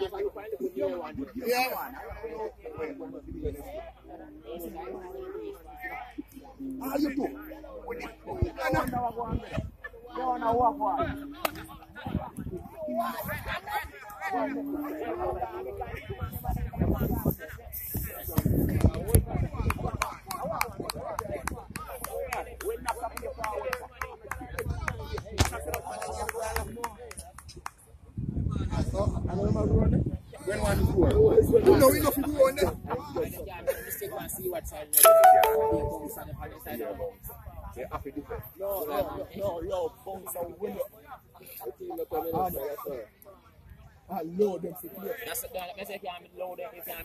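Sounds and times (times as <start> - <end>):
people talking and calling out: 0.0 - 47.0
electronic chime: 35.0 - 36.3.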